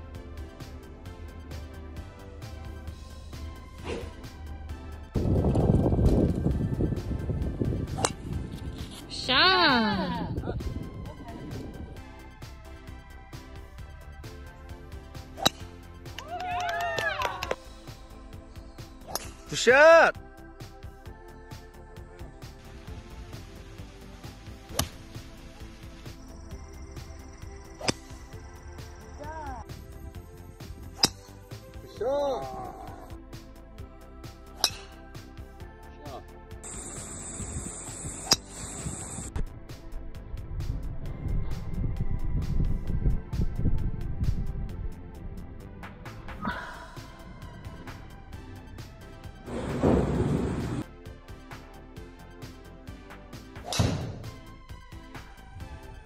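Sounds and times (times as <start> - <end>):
background music: 0.0 - 56.0
golf club hitting ball: 7.9 - 8.2, 15.3 - 15.7, 24.7 - 25.1, 27.8 - 28.2, 30.9 - 31.3, 34.6 - 35.0, 53.6 - 54.4.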